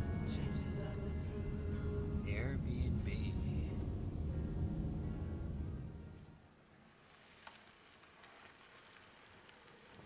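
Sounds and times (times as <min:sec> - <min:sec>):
car tyres rolling over gravel: 0:06.9 - 0:10.0.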